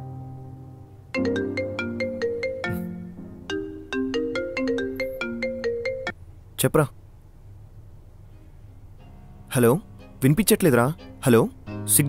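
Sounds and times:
phone ringtone melody: 1.2 - 6.2.

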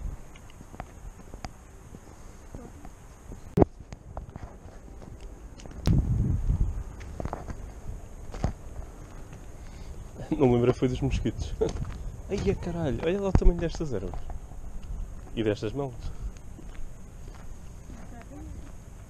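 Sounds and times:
footsteps through dry grass: 0.6 - 9.8, 11.5 - 19.0
low rumble on microphone: 5.8 - 8.9.

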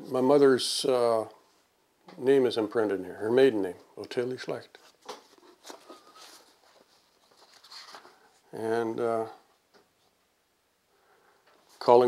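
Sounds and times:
book pages rustling: 4.8 - 8.4.

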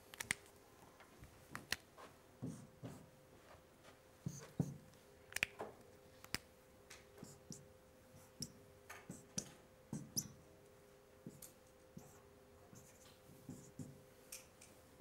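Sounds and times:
faint steady hum: 0.0 - 15.0
marker tapping on whiteboard: 4.3 - 4.8, 8.4 - 10.4, 13.5 - 14.0.

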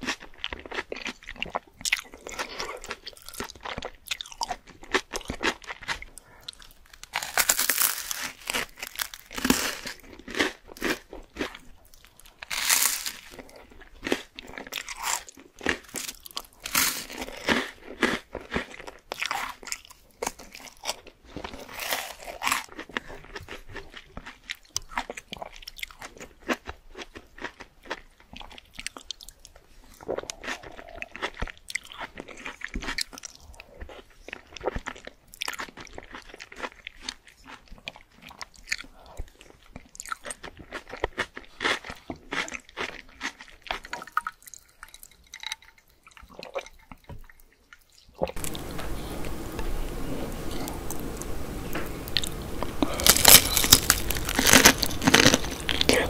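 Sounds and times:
crunchy bites of toast: 0.0 - 44.6, 52.1 - 56.0
chewing soft food: 0.0 - 56.0.

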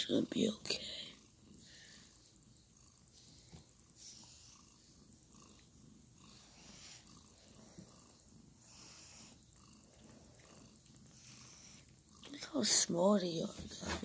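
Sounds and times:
cat purring: 0.0 - 14.0
soft breathy rustles: 0.7 - 14.0.

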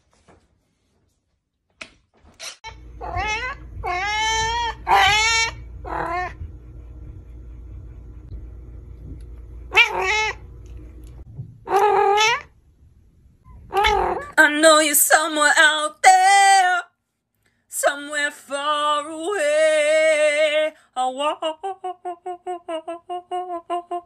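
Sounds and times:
low steady hum: 2.6 - 16.8
cat meowing: 3.0 - 6.4, 9.7 - 10.4, 11.7 - 12.5, 13.7 - 14.4.

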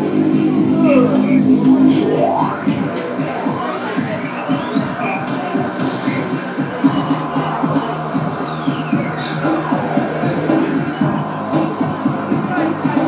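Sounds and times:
steady dance beat: 0.0 - 13.0
ticking hi-hats: 0.0 - 13.0
held bass note: 0.4 - 3.0
synth tone sweeping: 0.4 - 3.0.

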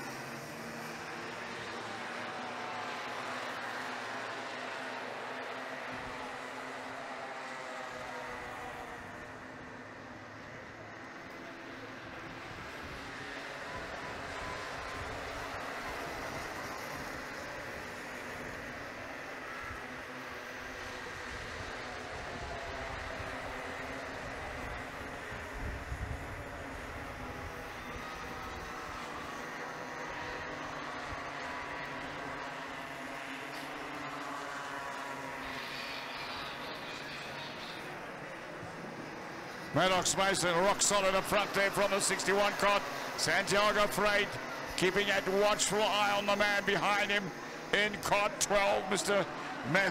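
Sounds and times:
racing kart engines: 0.0 - 49.9.

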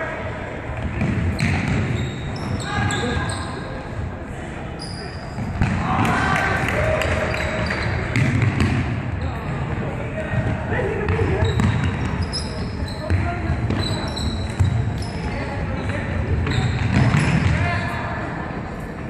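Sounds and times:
sports shoes squeaking: 0.9 - 3.9, 4.7 - 5.7, 7.1 - 8.5, 11.0 - 18.0.

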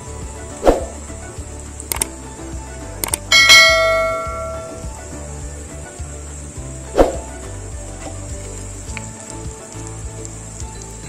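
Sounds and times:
quick clicks: 1.8 - 2.2, 3.0 - 3.3
bright bell ding: 3.3 - 4.9.

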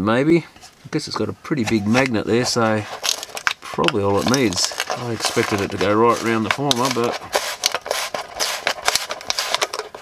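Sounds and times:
fingers scraping speaker cone: 1.5 - 10.0.

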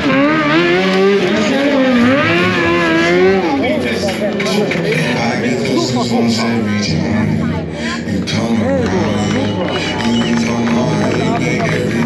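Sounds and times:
motorcycle engine revving: 0.0 - 6.1.

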